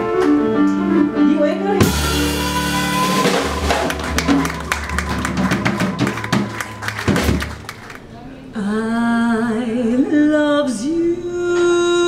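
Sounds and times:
upright bass notes: 1.4 - 7.8
drum kit and cymbals: 1.8 - 7.7.

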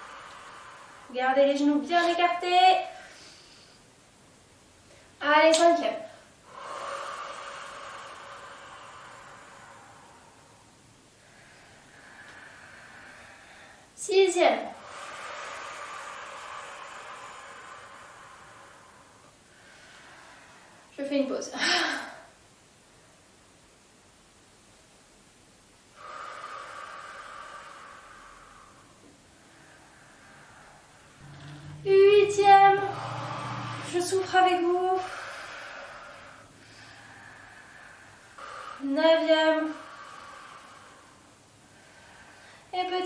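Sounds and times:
woman exhaling through mouth: 26.0 - 42.7.

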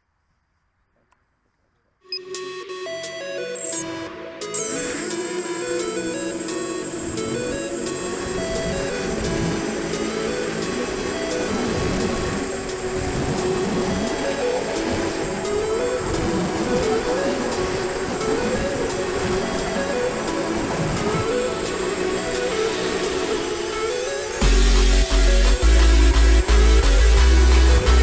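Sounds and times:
electronic music with steady beat: 2.0 - 28.0.

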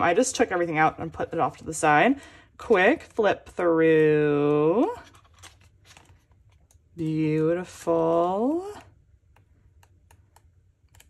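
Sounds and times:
photobook pages flipping: 4.9 - 6.8.

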